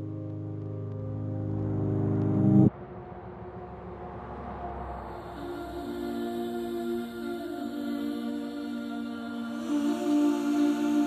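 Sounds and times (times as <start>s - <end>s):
synthesizer chord: 0.0s - 3.6s.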